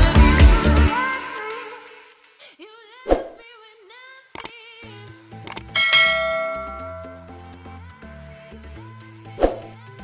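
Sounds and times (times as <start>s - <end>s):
background music with bass line: 0.0s - 1.0s
mouse clicks: 4.4s - 4.6s, 5.5s - 5.7s
bright bell ding: 5.7s - 7.5s.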